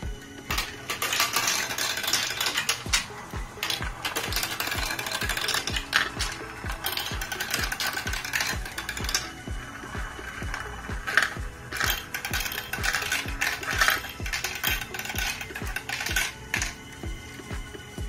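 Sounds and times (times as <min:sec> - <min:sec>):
chain elevators clicking: 0:00.0 - 0:18.0
marbles rattling on plastic tracks: 0:00.2 - 0:18.0.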